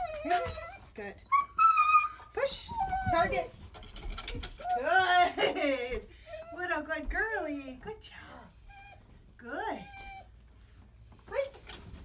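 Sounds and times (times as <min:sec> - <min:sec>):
dog whining: 0:00.0 - 0:05.3, 0:06.1 - 0:06.8, 0:07.4 - 0:12.0.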